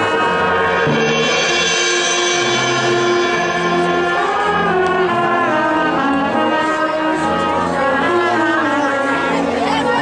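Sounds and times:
marching band brass chords: 0:00.0 - 0:10.0.

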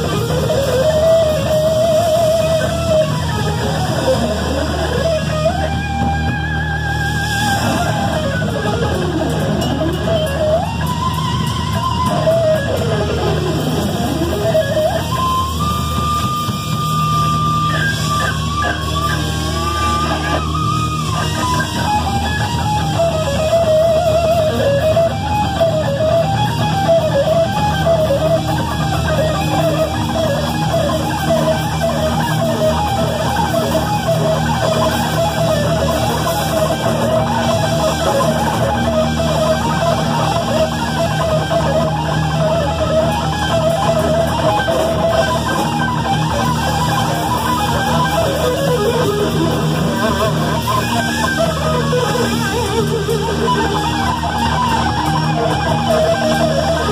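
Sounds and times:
distorted electric guitar: 0:00.0 - 0:56.9.

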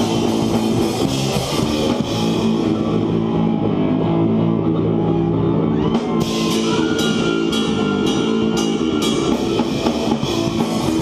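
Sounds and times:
bass chords: 0:00.0 - 0:11.0
distorted electric guitar: 0:00.0 - 0:11.0
drums: 0:00.0 - 0:11.0.

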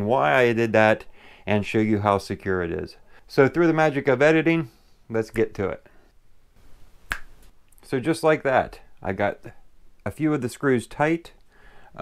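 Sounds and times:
finger snap: 0:07.1 - 0:07.6.

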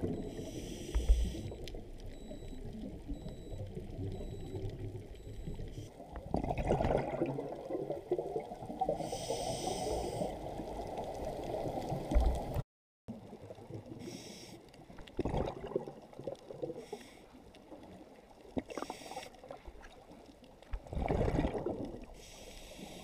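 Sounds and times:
regulator hissing inhale: 0:00.3 - 0:01.6, 0:09.0 - 0:10.4, 0:14.0 - 0:14.6, 0:16.8 - 0:17.4, 0:18.8 - 0:19.4, 0:22.2 - 0:23.0
exhaled bubbles rumbling: 0:01.5 - 0:09.0, 0:15.0 - 0:16.8, 0:20.7 - 0:22.2.

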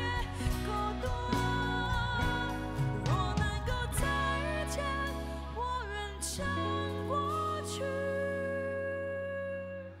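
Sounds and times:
acoustic guitar and band: 0:00.0 - 0:10.0.

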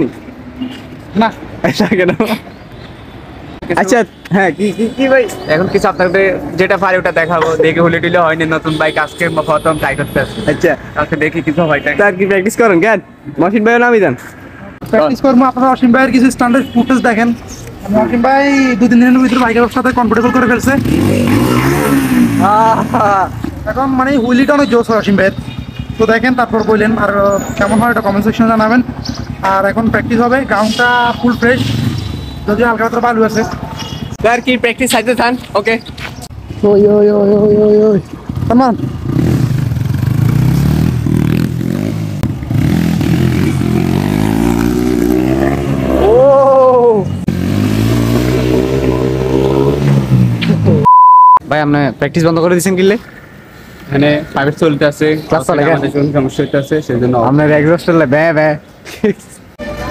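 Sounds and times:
man calling out: 0:03.7 - 0:12.2, 0:17.9 - 0:25.2, 0:45.9 - 0:47.1
motorcycle engine revving: 0:19.2 - 0:24.2, 0:31.4 - 0:32.4, 0:38.1 - 0:46.2, 0:47.2 - 0:50.9.

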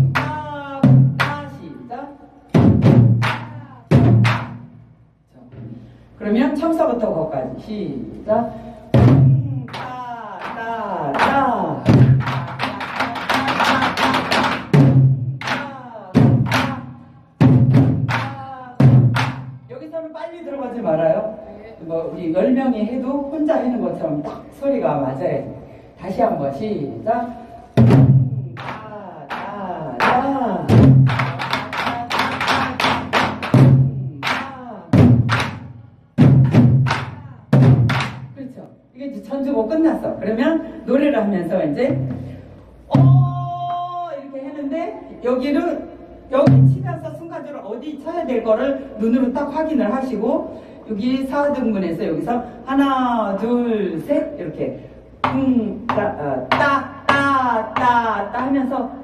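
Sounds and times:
deep drum booms: 0:02.5 - 0:04.8, 0:08.9 - 0:09.7, 0:17.4 - 0:19.7, 0:34.9 - 0:38.4, 0:41.9 - 0:43.6.

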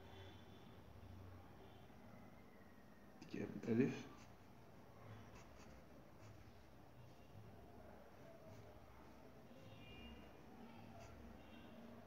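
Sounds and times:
pencil scratching on paper: 0:04.0 - 0:06.7, 0:10.8 - 0:11.6.

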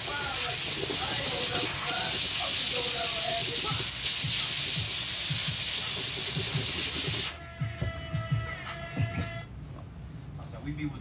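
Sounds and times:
steam cleaner hissing: 0:00.0 - 0:07.4.

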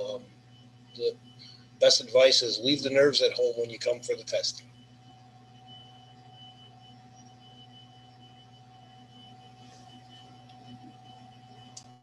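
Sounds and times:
faint electrical hum: 0:00.0 - 0:12.0
thin steady tones: 0:00.0 - 0:12.0.

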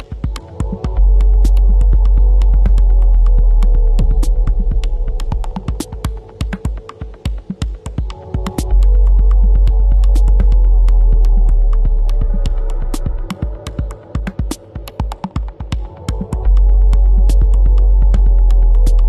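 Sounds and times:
soft synth pads: 0:00.0 - 0:19.0.

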